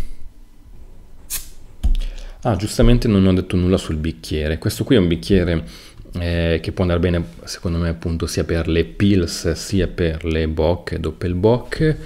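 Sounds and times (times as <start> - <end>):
bottle gas hiss: 1.3 - 2.3.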